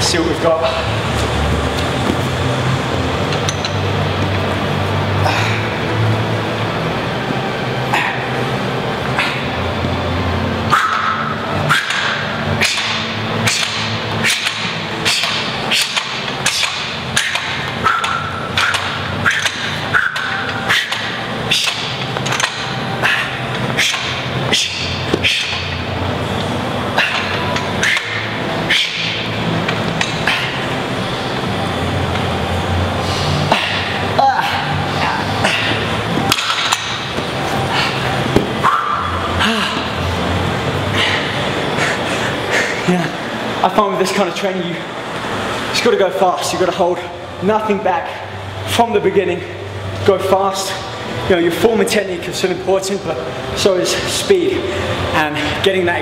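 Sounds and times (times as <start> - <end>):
low steady hum: 0.0 - 56.0.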